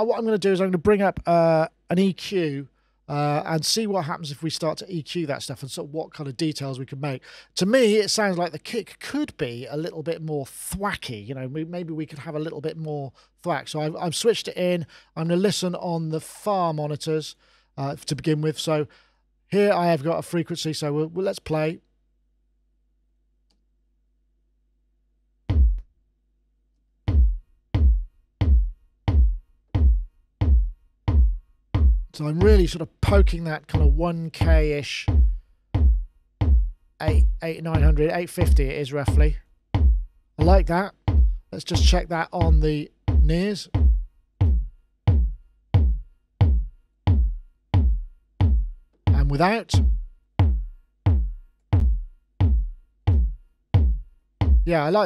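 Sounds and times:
electronic kick drum: 25.5 - 25.9, 27.1 - 54.8.

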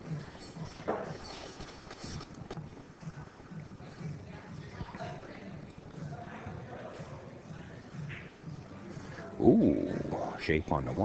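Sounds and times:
murmur of distant voices: 3.5 - 11.0.

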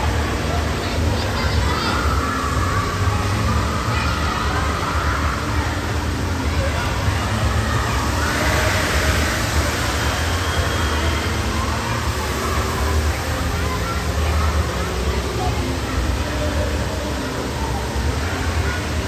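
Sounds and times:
distant voices: 0.0 - 19.0.

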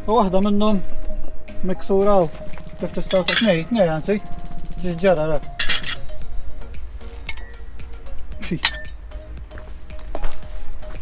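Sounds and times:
man talking: 0.0 - 0.9, 1.6 - 5.6, 8.4 - 8.8
glass bottle chinking: 2.7 - 3.8, 5.6 - 6.2, 7.3 - 7.6, 8.6 - 9.0.

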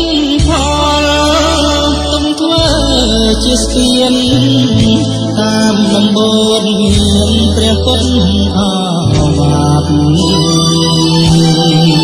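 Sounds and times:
pop song playing: 0.0 - 12.0.

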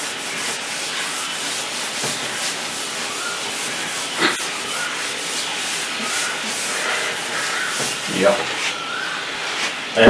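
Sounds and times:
cloth rubbing on whiteboard: 0.0 - 10.0.

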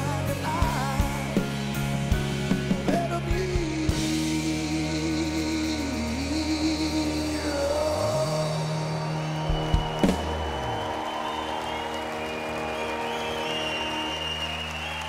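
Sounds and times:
live rock band chord: 0.0 - 15.0
crowd applauding: 7.9 - 15.0
drum and cymbal hits: 8.4 - 11.4.

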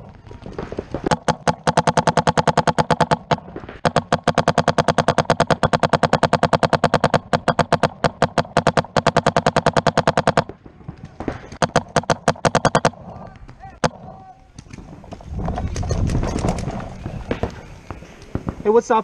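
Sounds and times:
paintball marker rapid firing: 0.4 - 13.2.

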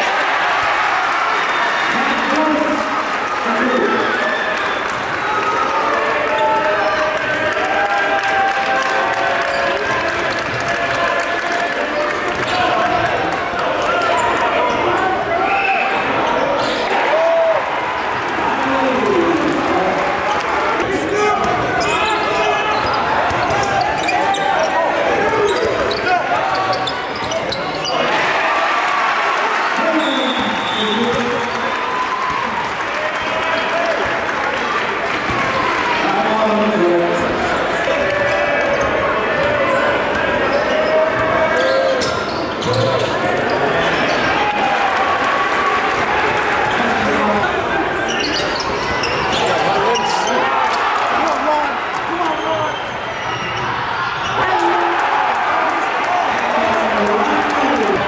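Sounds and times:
crowd chattering and shouting: 0.0 - 58.0.

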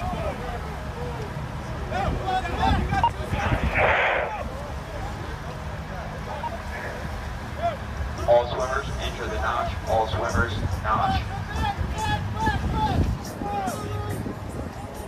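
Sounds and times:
steady low rumble: 0.0 - 13.6
distant voices of people: 0.0 - 15.0
short rush of noise: 3.3 - 4.5.

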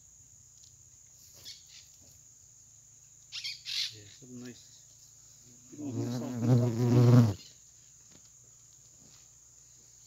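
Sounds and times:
flying insect buzzing: 5.6 - 7.6.

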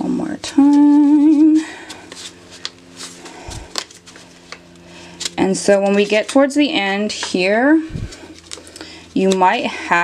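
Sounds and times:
paper crinkling and rustling: 2.1 - 6.5, 8.0 - 9.4.

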